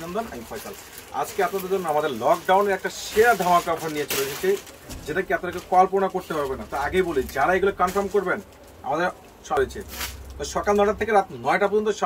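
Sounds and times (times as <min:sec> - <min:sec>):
man talking in a low voice: 0:00.0 - 0:12.0.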